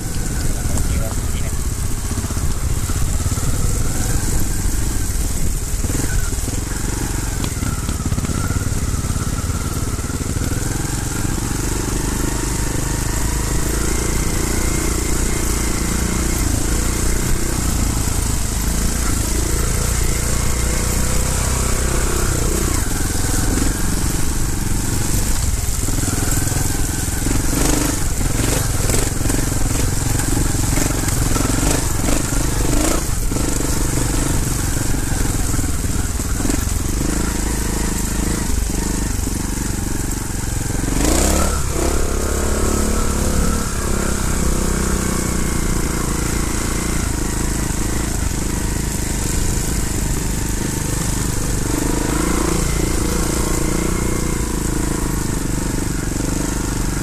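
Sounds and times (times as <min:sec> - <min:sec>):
motorcycle engine under load: 0:00.0 - 0:57.0.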